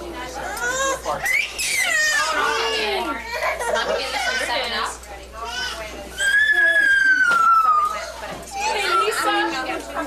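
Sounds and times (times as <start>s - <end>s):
child squealing: 6.2s - 9.4s.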